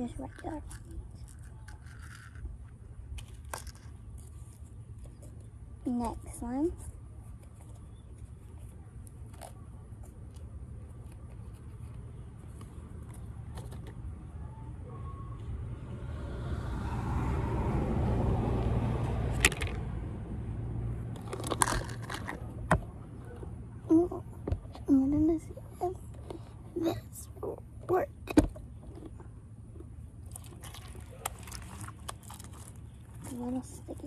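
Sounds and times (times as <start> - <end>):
car passing by: 15.6 - 21.1.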